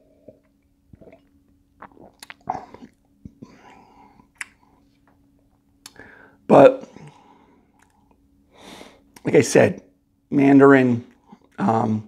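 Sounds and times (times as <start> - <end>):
man sipping and swallowing: 0.0 - 5.2
faint steady hum: 0.0 - 12.0
mouth clicks: 1.8 - 3.4, 4.3 - 4.6.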